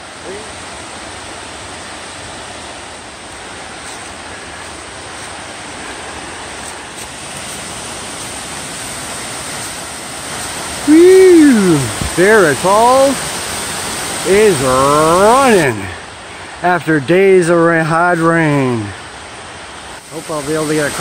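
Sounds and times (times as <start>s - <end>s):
waterfall rushing over rocks: 0.0s - 21.0s.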